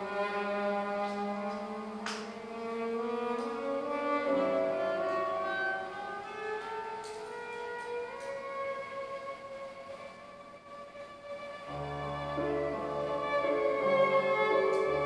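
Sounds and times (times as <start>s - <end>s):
solo violin slow notes: 0.0s - 15.0s.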